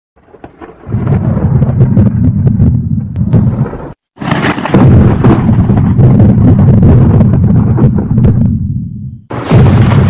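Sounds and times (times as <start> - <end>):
thunder rolling and crackling: 0.2 - 10.0.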